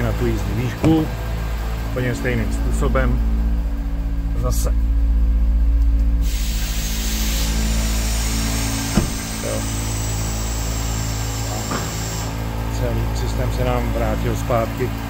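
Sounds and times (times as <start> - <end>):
truck engine idling: 0.0 - 15.0
air suspension hissing: 6.2 - 12.4.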